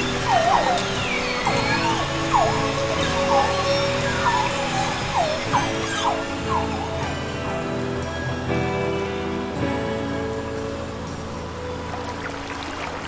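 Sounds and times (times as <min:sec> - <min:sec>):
beluga whales whistling: 0:00.0 - 0:08.5
low underwater drone: 0:00.0 - 0:13.0.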